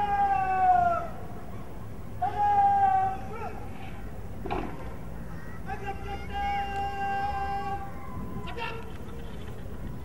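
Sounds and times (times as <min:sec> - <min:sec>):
person shouting drawn-out command: 0:02.2 - 0:03.9, 0:05.6 - 0:08.8.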